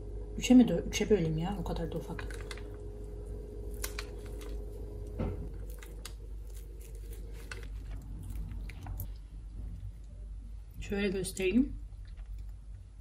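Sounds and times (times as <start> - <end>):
knife crunching through brownie: 5.4 - 9.1.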